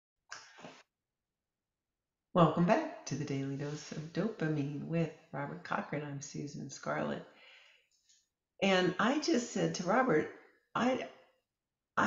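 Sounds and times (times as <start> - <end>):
person breathing sharply: 7.4 - 7.8.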